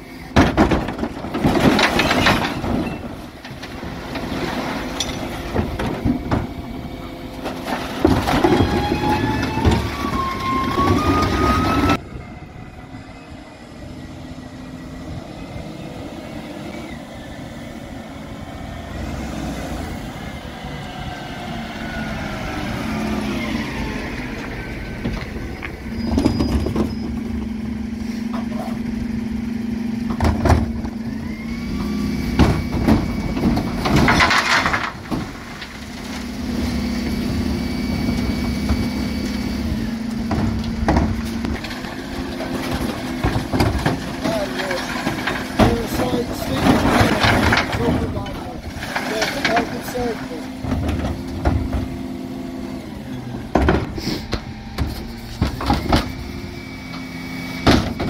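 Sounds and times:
bins clattering and banging: 0.2 - 12.0, 24.1 - 29.2, 29.9 - 31.1, 31.7 - 58.0
hydraulic whine: 2.0 - 49.3, 50.0 - 58.0
lorry engine pulling along: 2.8 - 33.8.

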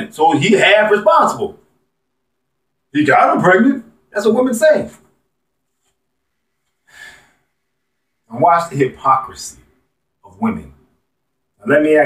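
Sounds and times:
man breathing softly: 6.6 - 7.8.

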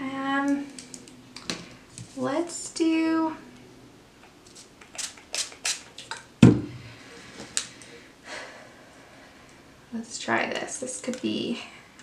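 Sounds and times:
knock on tabletop: 6.4 - 6.8.

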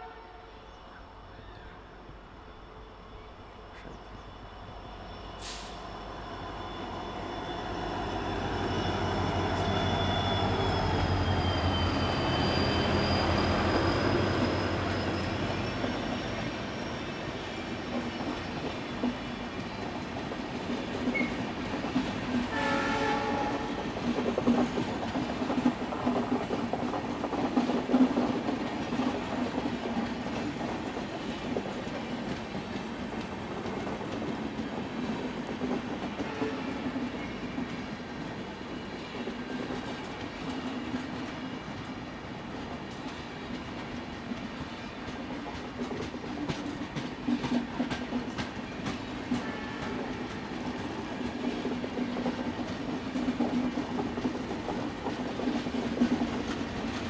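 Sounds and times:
locomotive horn blast: 0.0 - 0.6, 22.5 - 23.8, 36.2 - 36.9, 49.4 - 50.2
train wheels clickety-clack: 8.0 - 57.0.

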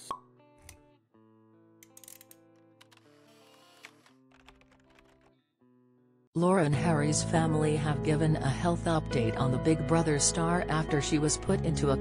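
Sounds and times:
quiet background music: 6.4 - 12.0.

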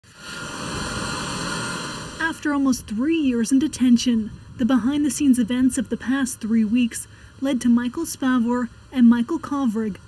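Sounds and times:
faint high whine: 0.0 - 10.0
jet engines rushing: 0.0 - 10.0.

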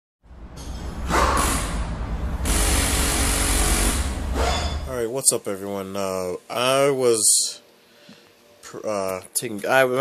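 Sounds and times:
deep rumble: 0.3 - 4.9.

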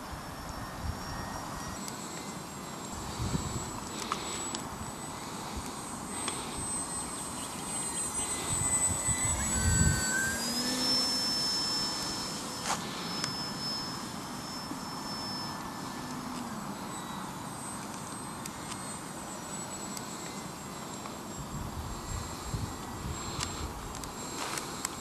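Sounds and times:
model plane motor whining: 0.0 - 25.0.

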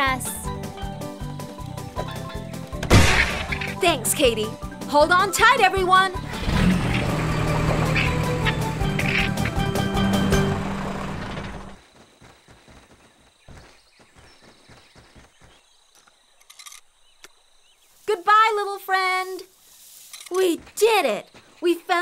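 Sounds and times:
loud cartoon music: 2.1 - 11.8.

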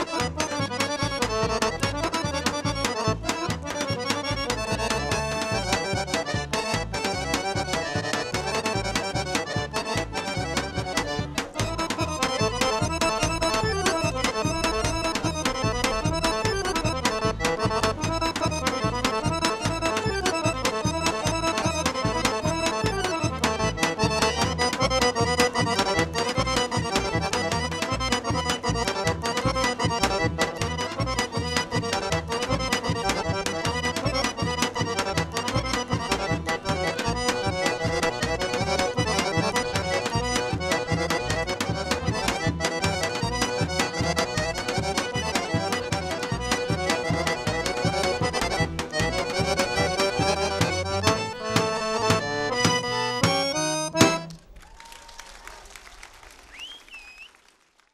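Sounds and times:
steady driving beat: 0.0 - 54.3
folk dance tune on accordion: 0.0 - 54.6.

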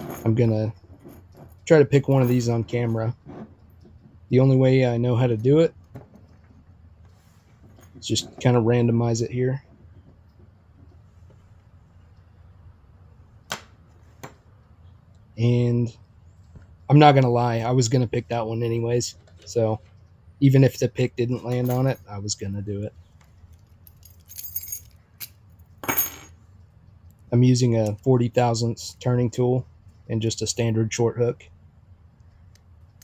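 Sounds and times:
metal tools clinking: 0.0 - 3.8, 21.3 - 22.1, 23.4 - 26.4.

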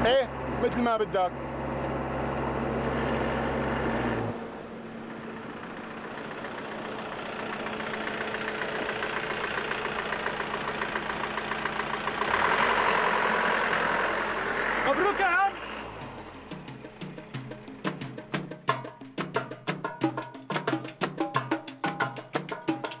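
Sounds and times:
truck engine driving past: 0.0 - 17.9.

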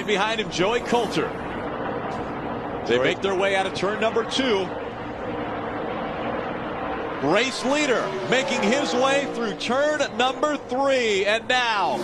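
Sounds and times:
race car engines droning: 0.0 - 12.0.

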